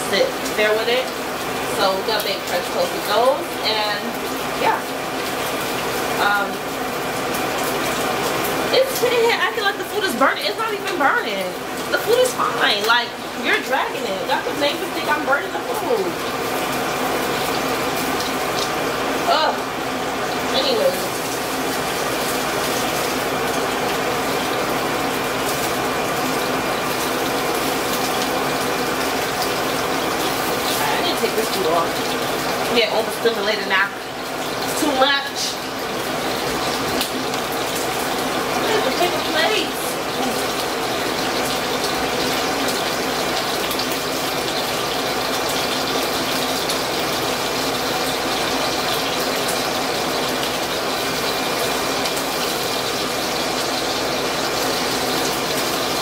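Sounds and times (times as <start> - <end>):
food sizzling in a pan: 0.0 - 56.0.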